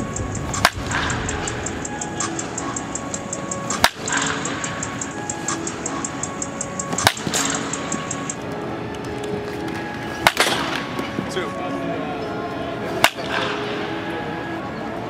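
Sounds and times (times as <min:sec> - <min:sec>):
background music: 0:00.0 - 0:15.0
bat cracking a ball: 0:03.7 - 0:04.6, 0:06.9 - 0:07.8, 0:10.2 - 0:11.0, 0:13.0 - 0:13.6.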